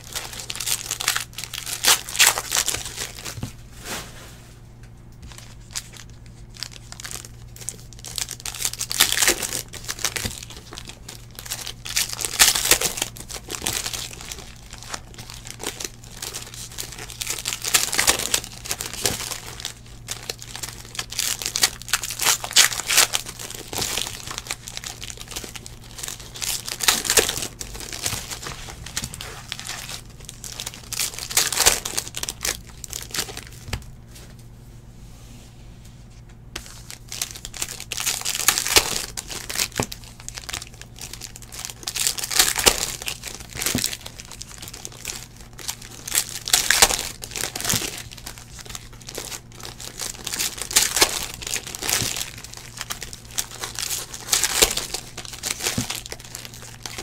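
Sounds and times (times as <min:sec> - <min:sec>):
foil wrappers crinkling: 0:00.0 - 0:04.2, 0:05.2 - 0:34.4, 0:36.6 - 0:57.0.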